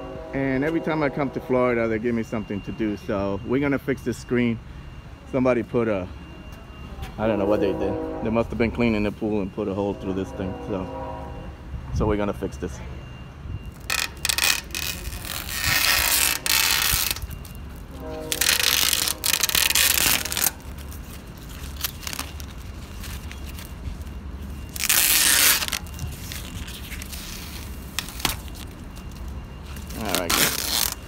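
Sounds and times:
tape and mesh rustling and tearing: 0:13.7 - 0:31.0.

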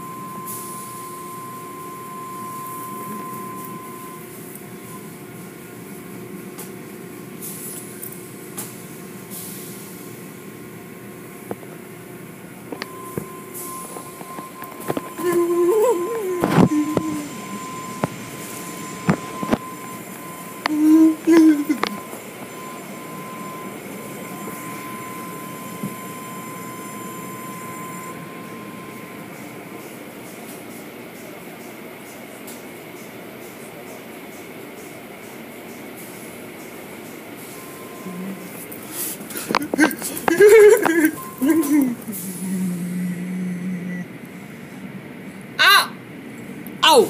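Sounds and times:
car wash spray and machinery: 0:00.0 - 0:42.5
thin steady whine: 0:00.0 - 0:47.0.

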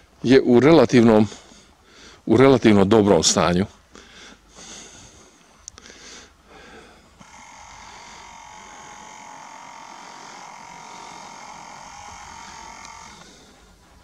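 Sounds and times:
camera zoom motor whine: 0:07.1 - 0:13.9.

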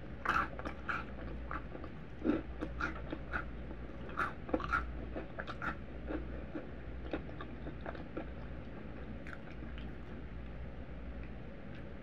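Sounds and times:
crunchy biting and chewing: 0:00.2 - 0:10.2.

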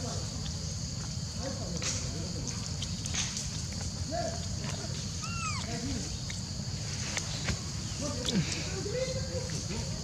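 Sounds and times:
macaque coo calls: 0:05.2 - 0:05.8.

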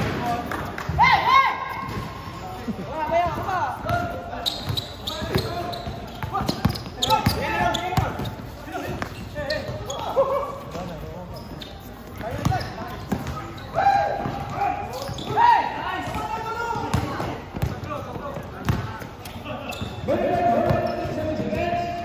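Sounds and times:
basketball bouncing on hard court: 0:12.2 - 0:13.5, 0:16.0 - 0:19.0
players shouting: 0:19.6 - 0:22.0.

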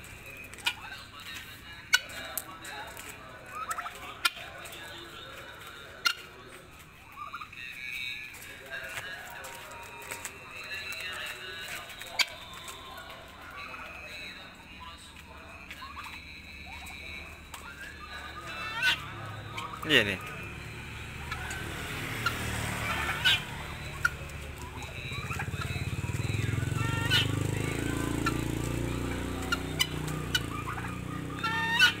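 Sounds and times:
birds giving harsh calls: 0:00.0 - 0:32.0.

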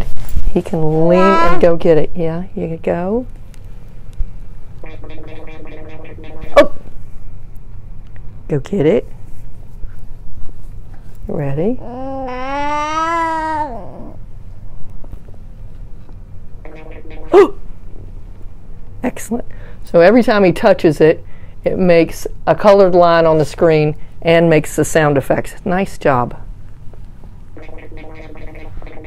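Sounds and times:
steady electronic tone: 0:27.6 - 0:29.0.

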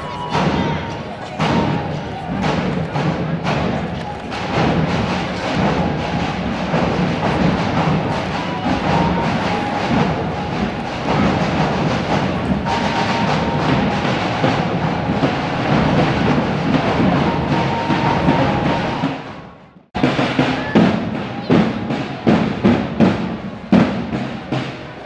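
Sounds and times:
crowd voices: 0:00.0 - 0:25.0
drums beating processional rhythm: 0:00.0 - 0:25.0
music: 0:00.0 - 0:25.0.

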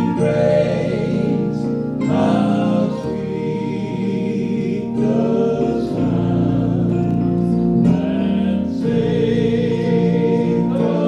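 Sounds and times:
men singing in harmony: 0:00.0 - 0:11.0.

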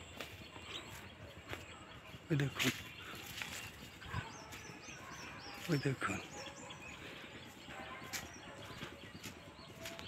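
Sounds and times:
faint footsteps: 0:00.0 - 0:10.0
quiet outdoor background: 0:00.0 - 0:10.0.

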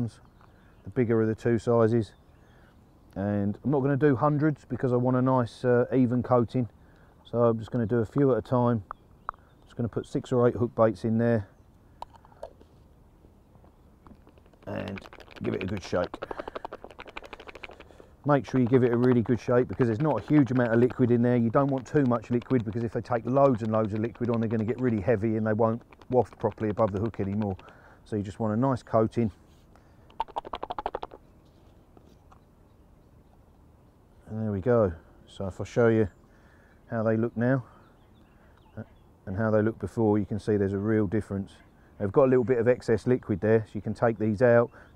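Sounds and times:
plastic pot rattling: 0:14.0 - 0:28.4, 0:30.1 - 0:31.2.

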